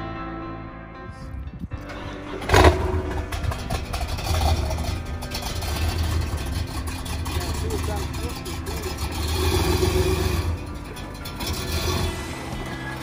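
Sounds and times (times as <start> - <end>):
car engine starting and rumbling: 1.2 - 13.0.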